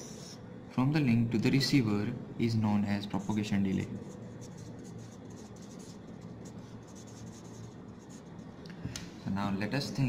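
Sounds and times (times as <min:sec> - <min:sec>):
marker pen writing on board: 0:00.0 - 0:00.4, 0:03.2 - 0:08.4
faint low hum: 0:00.0 - 0:10.0.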